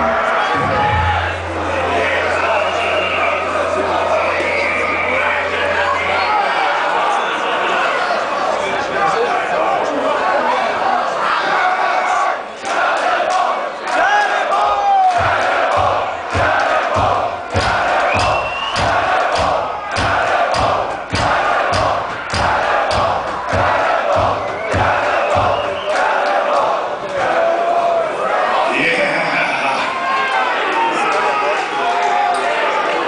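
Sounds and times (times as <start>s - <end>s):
crowd cheering and shouting: 0.0s - 33.0s
rhythmic claps or stamps: 15.0s - 27.2s.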